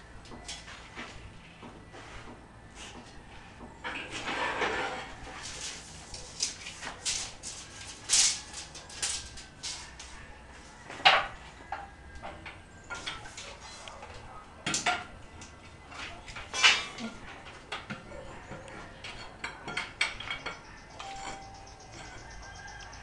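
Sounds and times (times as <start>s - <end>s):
metal pipes clinking and knocking: 17.7s - 22.6s.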